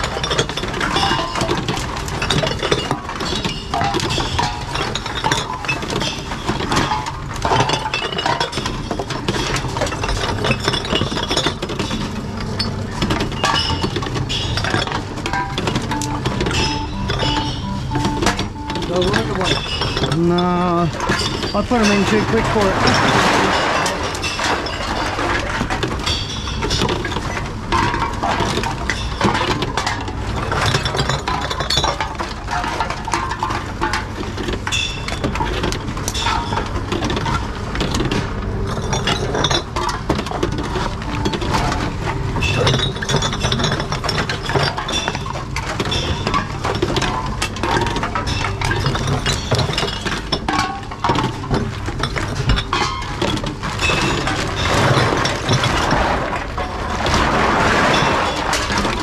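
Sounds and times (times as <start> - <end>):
bottles and cans clinking: 0.0 - 59.0.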